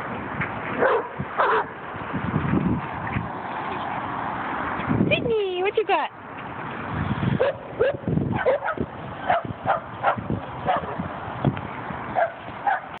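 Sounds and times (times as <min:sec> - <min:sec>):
dog barking: 0:00.8 - 0:01.7, 0:07.4 - 0:11.0, 0:12.2 - 0:13.0.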